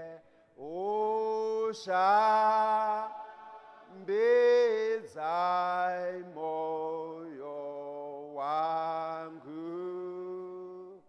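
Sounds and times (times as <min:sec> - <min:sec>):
man singing long held notes: 0:00.0 - 0:11.0.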